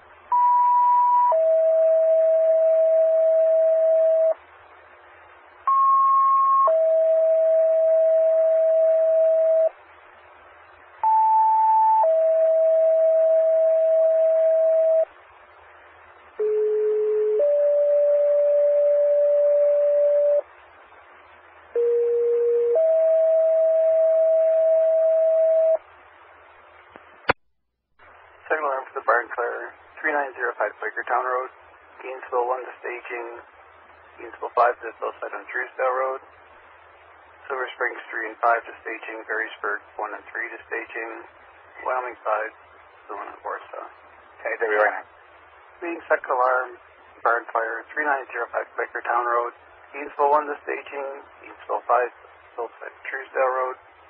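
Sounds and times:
two-tone paging tones: 0.3s - 4.4s, 5.7s - 9.7s, 11.0s - 15.0s, 16.4s - 20.4s
radio hiss: 28.0s - 54.0s
dispatcher speaking: 28.4s - 33.4s, 34.2s - 36.2s, 37.4s - 45.1s, 45.8s - 53.8s.

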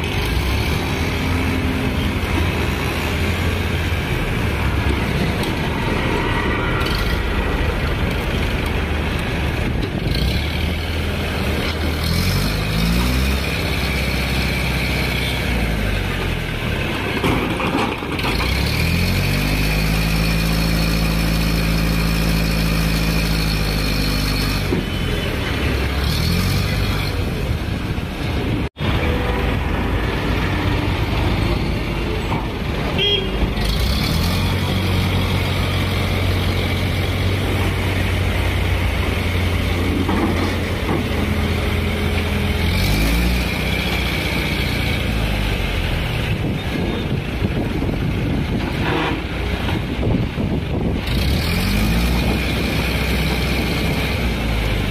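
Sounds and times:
crane diesel engine: 0.0s - 54.9s
trucks passing: 0.0s - 54.9s.

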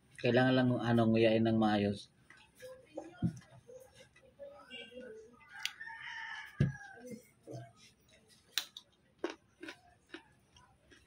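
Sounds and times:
rooster crowing: 5.4s - 7.2s.

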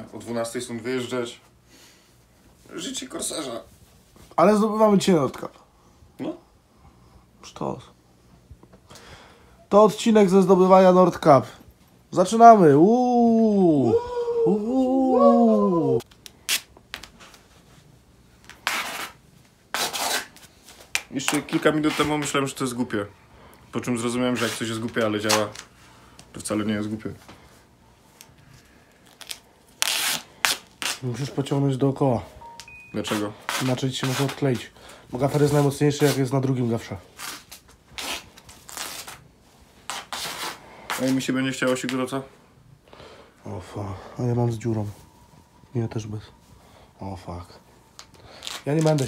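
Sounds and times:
duct tape pulled off roll: 18.4s - 20.4s, 29.1s - 31.0s, 37.2s - 39.2s.

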